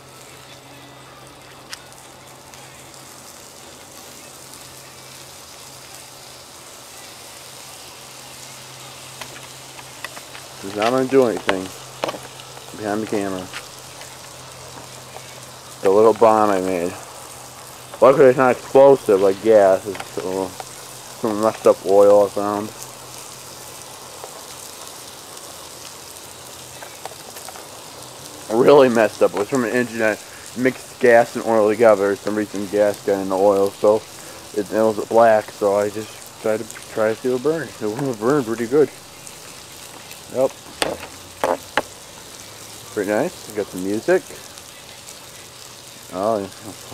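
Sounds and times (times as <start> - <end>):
fire hissing and crackling: 0.0 - 46.9.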